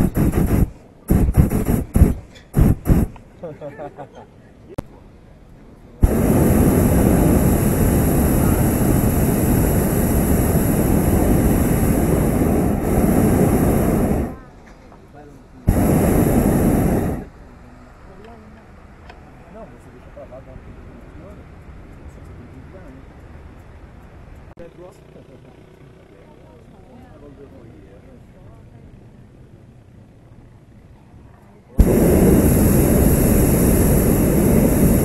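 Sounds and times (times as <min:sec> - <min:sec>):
propane burner blasts: 0:00.0 - 0:03.2, 0:06.0 - 0:14.6, 0:15.7 - 0:17.5, 0:31.8 - 0:35.0.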